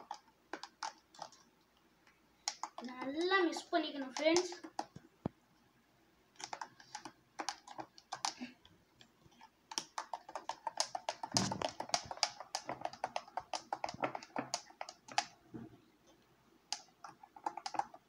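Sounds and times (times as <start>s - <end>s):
clicking and tapping at glass jar: 16.7s - 18.0s.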